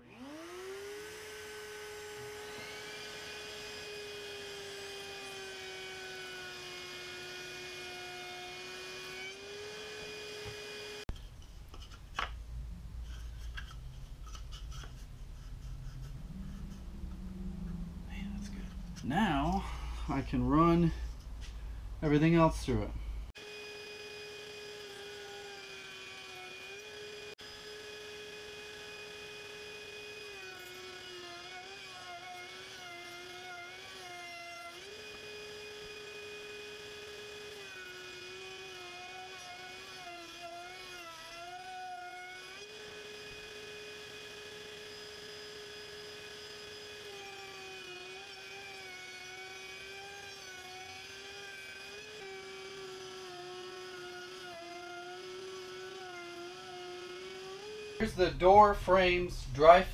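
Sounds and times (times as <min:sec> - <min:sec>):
router whining: 0:00.0 - 0:59.9.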